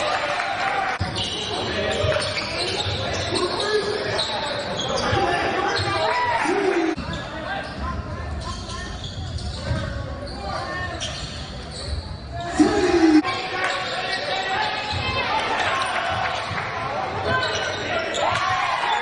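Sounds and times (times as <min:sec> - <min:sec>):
voices in a gym: 0:00.0 - 0:19.0
loud shout: 0:05.3 - 0:07.0, 0:12.4 - 0:13.7.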